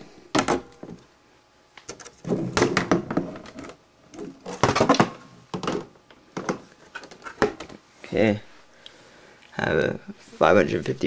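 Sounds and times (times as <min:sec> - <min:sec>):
plastic case knocks and scrapes: 0:01.9 - 0:03.8, 0:04.4 - 0:07.8.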